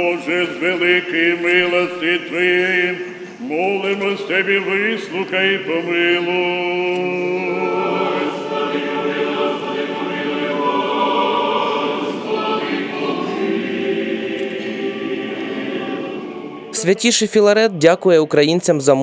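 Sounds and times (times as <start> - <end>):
church choir chanting: 0.0 - 17.5.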